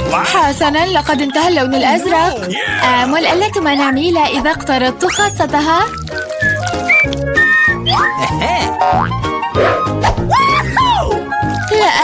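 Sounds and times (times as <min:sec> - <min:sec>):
upbeat background music: 0:00.0 - 0:12.0.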